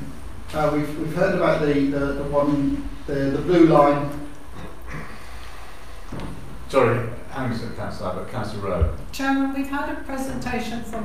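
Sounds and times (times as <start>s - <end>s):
faint hiss: 0.0s - 11.0s
steady low hum: 0.0s - 11.0s.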